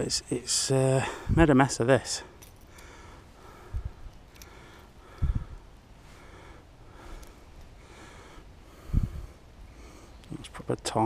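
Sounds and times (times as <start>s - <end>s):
man breathing through nose: 2.6s - 10.2s.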